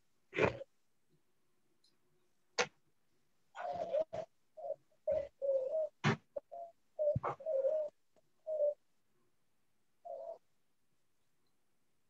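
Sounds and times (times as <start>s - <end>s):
bird cooing: 0.3s - 0.7s, 3.5s - 8.8s, 10.0s - 10.5s.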